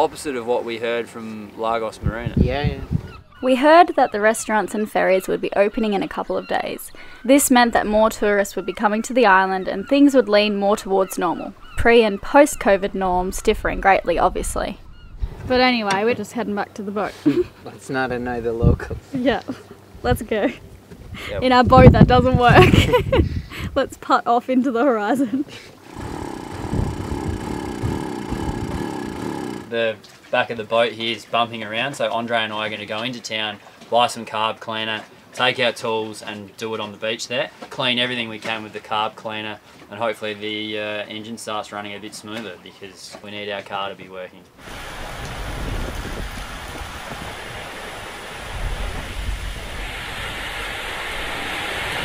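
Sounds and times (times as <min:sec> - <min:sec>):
wind buffeting microphone: 0:01.8 - 0:03.8, 0:11.6 - 0:15.9, 0:18.1 - 0:19.1, 0:19.9 - 0:24.0, 0:25.9 - 0:29.7, 0:44.6 - 0:52.0
outboard motor running rough: 0:25.8 - 0:29.9.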